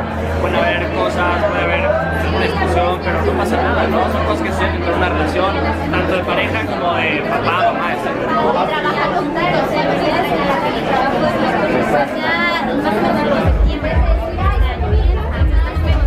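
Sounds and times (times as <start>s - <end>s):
people talking: 0.0s - 16.0s.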